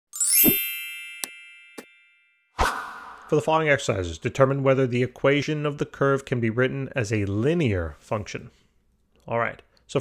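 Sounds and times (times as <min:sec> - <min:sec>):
bell-like chime with thump: 0:00.2 - 0:02.6.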